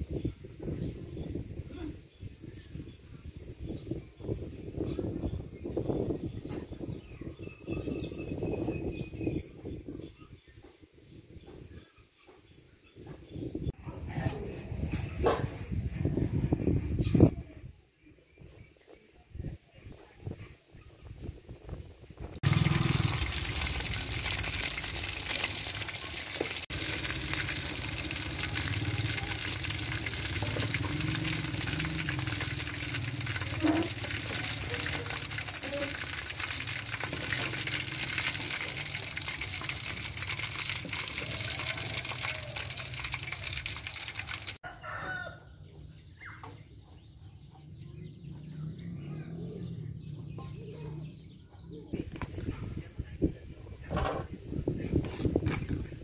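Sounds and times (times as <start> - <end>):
food deep-frying in oil: 22.3 - 44.6, 55.0 - 56.0.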